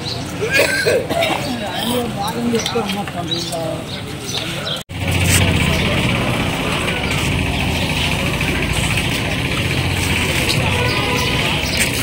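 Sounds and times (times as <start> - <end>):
low engine-like hum: 4.9 - 11.9.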